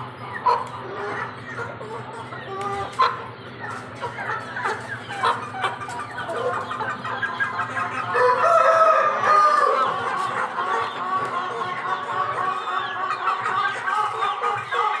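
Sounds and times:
chicks peeping and hens clucking: 0.0s - 15.0s
chicken long drawn-out call: 5.1s - 15.0s.

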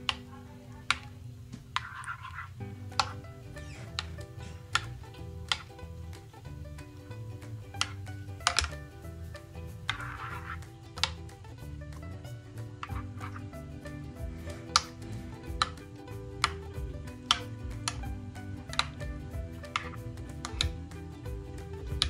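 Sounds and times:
soft background music: 0.0s - 22.0s.

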